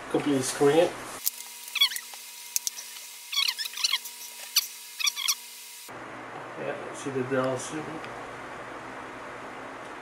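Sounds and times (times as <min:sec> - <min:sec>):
plastic cover squeaking: 0:01.4 - 0:05.4.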